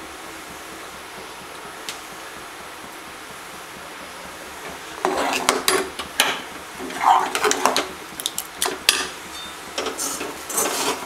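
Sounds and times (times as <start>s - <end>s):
ladle scraping and clinking pot: 5.0s - 7.9s, 8.8s - 11.0s.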